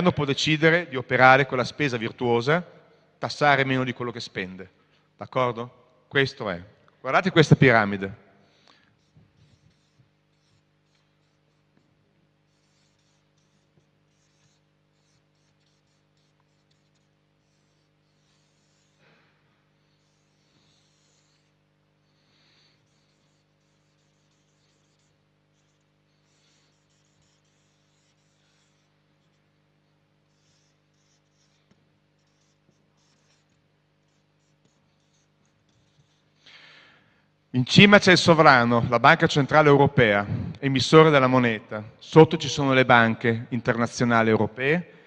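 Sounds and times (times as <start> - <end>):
steady low hum: 0.0 - 21.5, 30.2 - 45.0
marker writing on paper: 8.4 - 36.5
low steady hum: 37.6 - 45.0.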